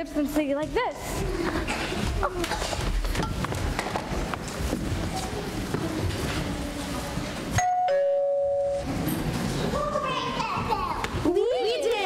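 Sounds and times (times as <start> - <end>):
two-tone doorbell chime: 7.6 - 8.9.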